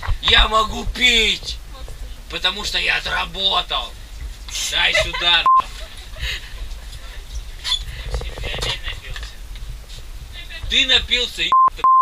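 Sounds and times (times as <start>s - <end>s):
steady low rumble: 0.0s - 11.6s.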